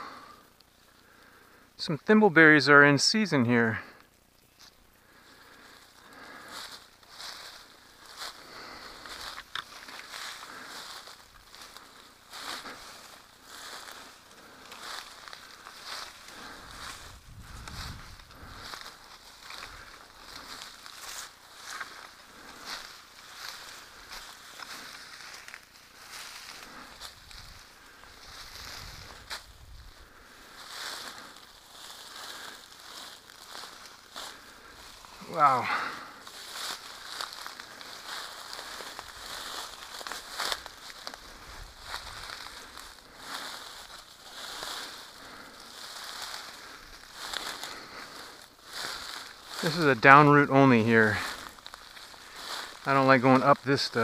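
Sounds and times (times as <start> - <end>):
leaves rustling underfoot: 0.0 - 54.0
twigs crunching and crackling: 3.9 - 54.0
low rumbles: 12.8 - 21.0.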